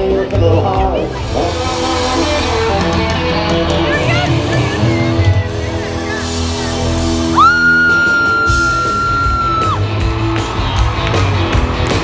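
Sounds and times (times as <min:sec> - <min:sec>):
live country band music: 0:00.0 - 0:12.0
person yelling woo: 0:07.3 - 0:09.8.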